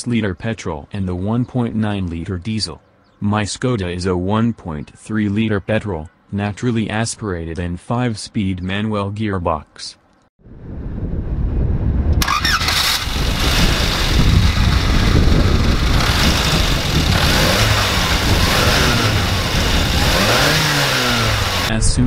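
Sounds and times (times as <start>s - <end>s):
car engine starting and running: 12.2s - 21.8s.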